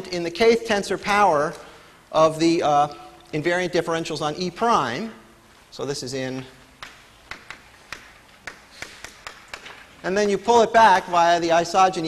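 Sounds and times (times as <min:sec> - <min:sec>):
chalk tapping on blackboard: 0:06.8 - 0:09.8.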